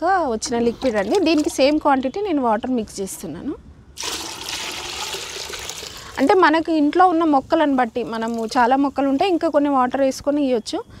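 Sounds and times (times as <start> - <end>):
water pouring into bucket: 0.8 - 1.6, 4.0 - 6.2, 8.2 - 8.7.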